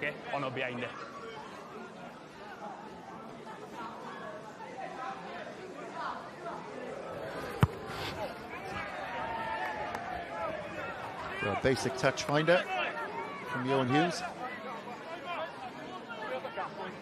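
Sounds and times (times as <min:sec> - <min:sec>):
boot kicking ball: 0:07.5 - 0:07.9.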